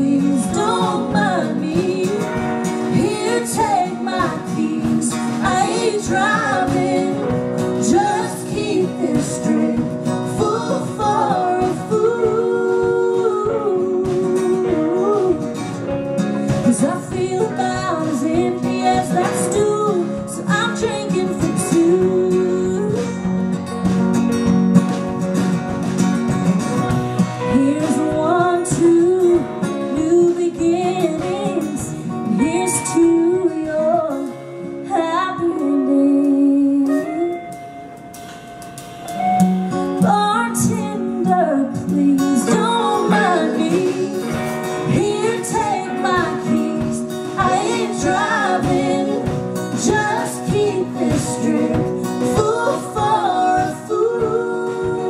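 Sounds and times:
woman singing a country ballad: 0.0 - 23.7, 27.2 - 37.9, 39.7 - 55.0
guitar accompaniment: 0.0 - 55.0.

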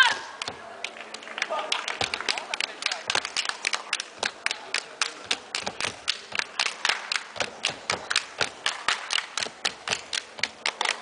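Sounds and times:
sharp hand claps: 0.4 - 11.0.

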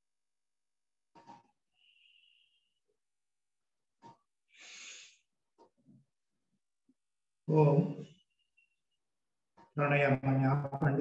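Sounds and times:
breath through the nose: 4.5 - 5.3.

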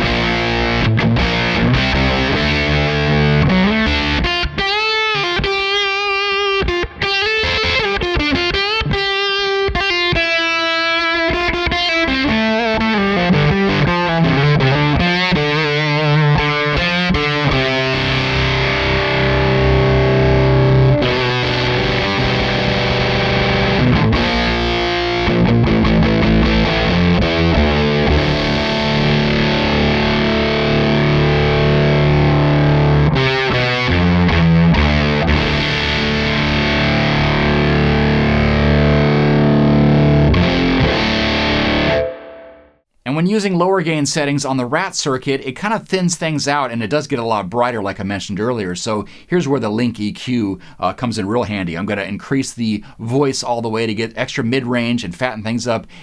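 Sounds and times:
distorted electric guitar: 0.0 - 42.8.

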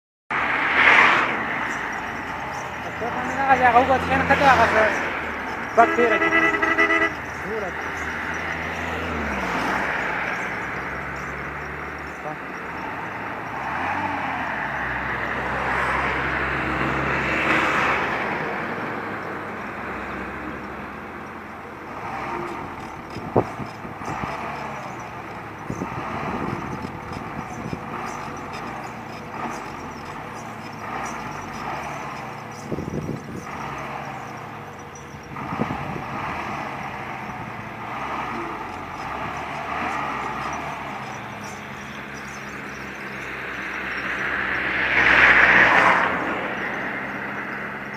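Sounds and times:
truck engine running: 0.3 - 47.9
voices talking: 1.4 - 16.4, 17.7 - 47.9.

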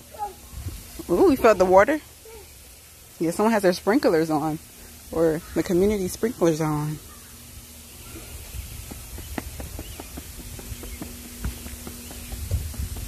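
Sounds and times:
faint steady hum: 0.0 - 13.0
wind rumble on microphone: 8.4 - 13.0
footsteps on concrete: 8.7 - 13.0.

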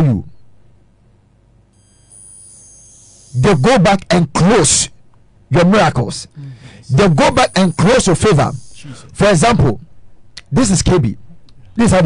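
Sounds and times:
high-pitched held tones: 1.8 - 3.8, 6.8 - 9.2
people talking: 3.4 - 4.9, 5.5 - 9.8, 10.4 - 11.2, 11.8 - 12.0.

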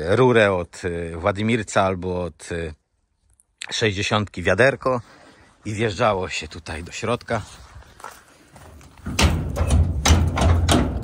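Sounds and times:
barn door rattling and knocking: 8.8 - 11.0.

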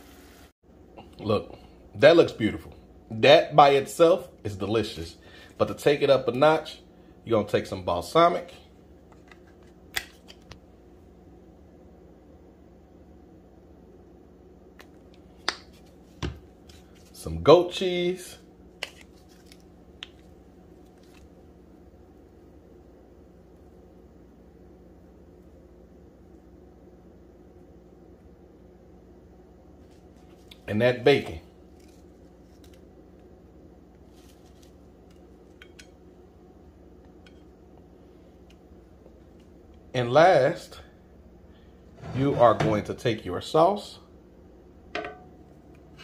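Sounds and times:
faint room hum: 0.0 - 46.0.

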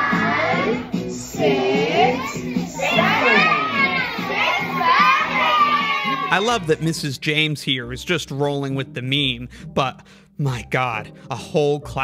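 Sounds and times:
children shouting together: 0.0 - 6.6
counting song backing music: 0.0 - 12.0.

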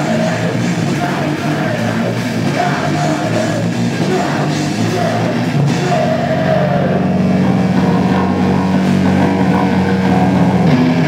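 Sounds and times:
rock band droning distorted chord: 0.0 - 11.0.

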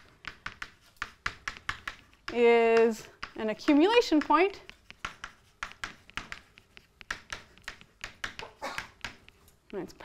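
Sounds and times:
chalk tapping on blackboard: 0.0 - 10.0.

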